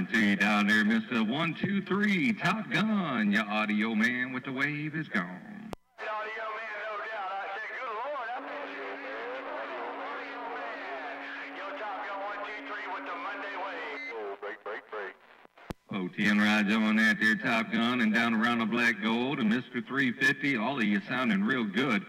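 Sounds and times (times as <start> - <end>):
garbled voices over radio: 0.0 - 15.3, 15.9 - 22.0.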